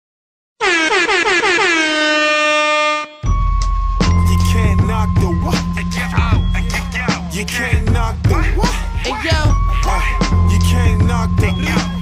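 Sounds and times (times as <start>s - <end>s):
air horn blasts: 0.6s - 3.3s.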